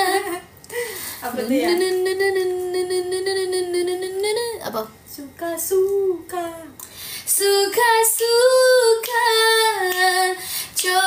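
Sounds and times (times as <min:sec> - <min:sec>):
woman singing unaccompanied: 0:01.3 - 0:11.0.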